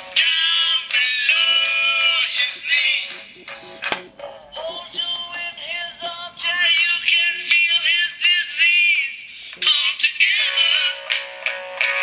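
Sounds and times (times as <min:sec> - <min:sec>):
song through small speaker: 0:00.0 - 0:12.0.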